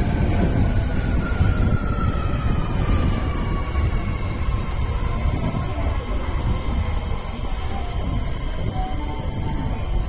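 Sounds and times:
subway train rumbling: 0:00.0 - 0:10.0.

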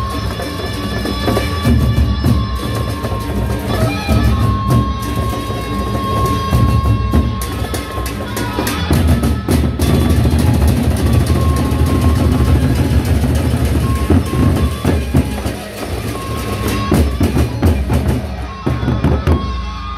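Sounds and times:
barrel drums beaten fast: 0:00.0 - 0:19.5.

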